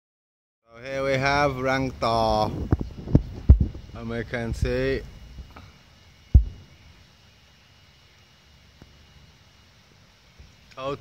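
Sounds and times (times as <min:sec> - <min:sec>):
faint steady hiss: 0:00.7 - 0:11.0
low thump on camera microphone: 0:02.7 - 0:03.8, 0:06.3 - 0:06.6.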